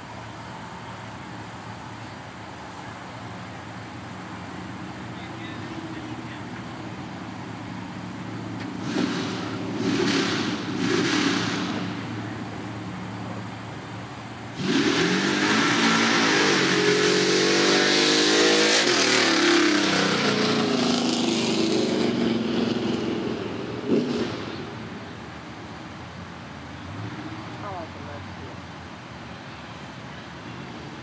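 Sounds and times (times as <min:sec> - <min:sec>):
truck engine revving: 0:03.4 - 0:25.0.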